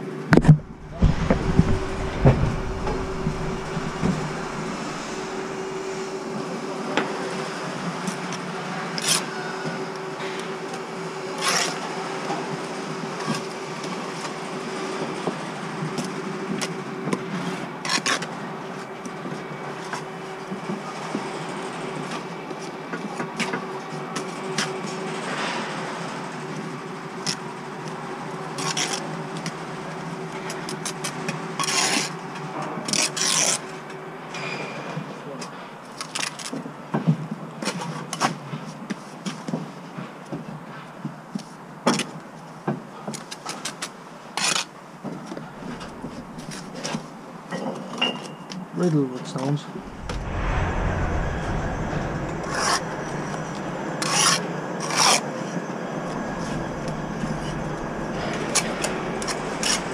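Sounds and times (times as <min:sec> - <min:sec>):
steady background hum: 0:00.4 - 0:06.5, 0:45.4 - 0:47.2, 0:49.8 - 0:59.9.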